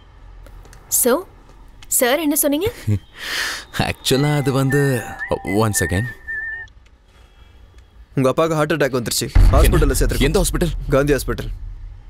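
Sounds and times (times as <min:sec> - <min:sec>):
mobile phone ringing: 0:04.0 - 0:06.7.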